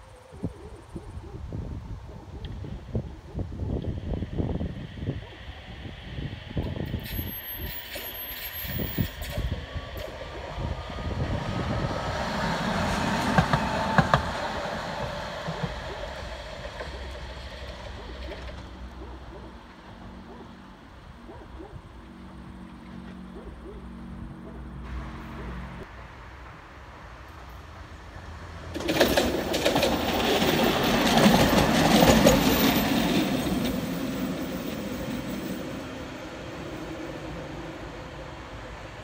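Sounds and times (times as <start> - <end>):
electric tram on rails: 0.0 - 39.0
sharp clacks of tram wheels: 6.6 - 10.6, 12.1 - 19.0, 28.7 - 36.0.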